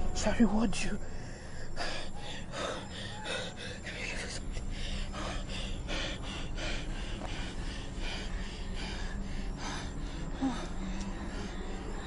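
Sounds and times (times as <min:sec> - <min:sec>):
person gasping breaths: 0:01.2 - 0:11.7.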